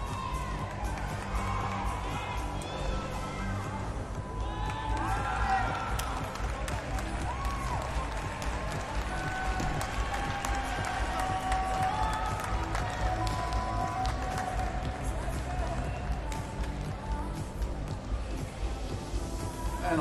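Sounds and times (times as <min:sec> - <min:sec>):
claps and cheers: 0:00.0 - 0:19.6
music over hall speakers: 0:00.0 - 0:20.0.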